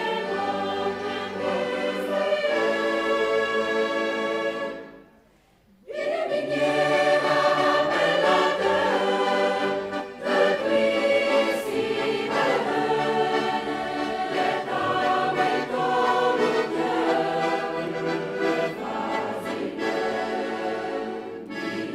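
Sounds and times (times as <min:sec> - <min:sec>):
choir singing sustained chords: 0:00.0 - 0:21.9.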